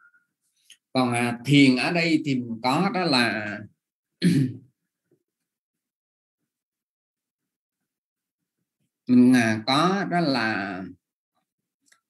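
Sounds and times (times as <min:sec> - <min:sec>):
man clearing throat: 0:04.2 - 0:04.7.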